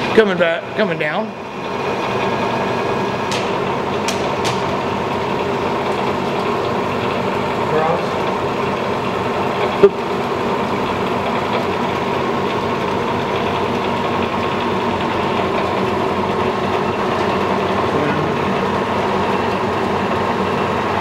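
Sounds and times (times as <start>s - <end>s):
mill motor humming and whining: 0.0s - 21.0s.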